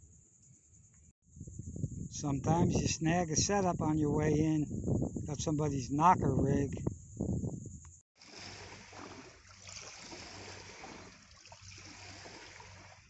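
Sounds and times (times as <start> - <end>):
small waves lapping on rocks: 8.2 - 13.0.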